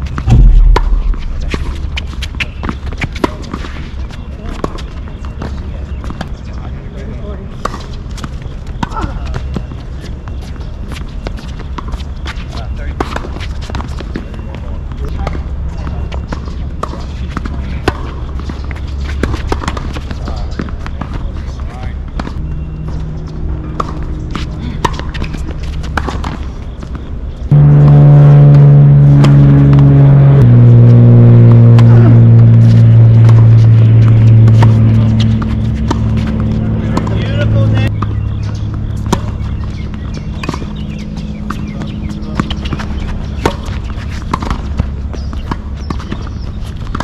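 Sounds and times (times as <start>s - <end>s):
steady low rumble: 0.0s - 3.2s, 21.8s - 47.0s
racquets hitting tennis ball: 0.0s - 27.7s, 31.4s - 47.0s
music of long held chords: 27.5s - 37.0s.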